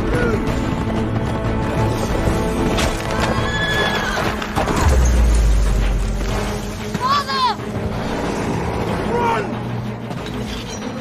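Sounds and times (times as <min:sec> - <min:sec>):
galloping hoofbeats: 0:00.0 - 0:02.0
background score music: 0:00.0 - 0:11.0.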